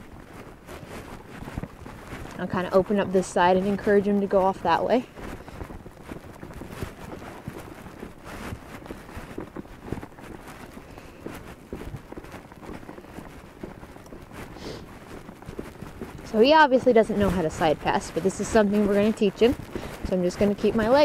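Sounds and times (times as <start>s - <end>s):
horse hooves on grass: 0.0s - 21.0s.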